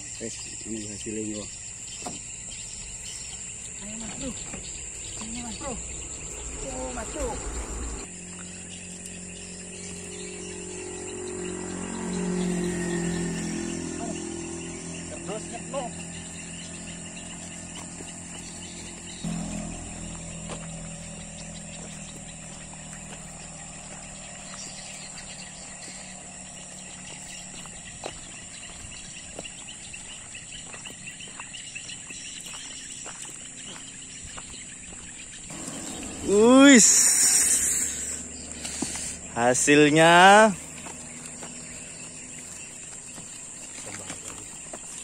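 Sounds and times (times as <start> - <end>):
insects chirring: 0.0 - 45.0
footsteps on sandy dirt: 1.9 - 7.4, 15.2 - 45.0.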